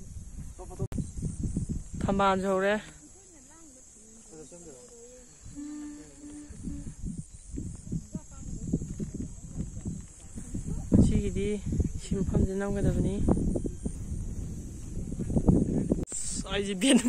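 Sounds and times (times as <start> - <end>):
wind buffeting microphone: 0.0 - 2.8, 5.2 - 17.0
insects droning: 0.0 - 17.0.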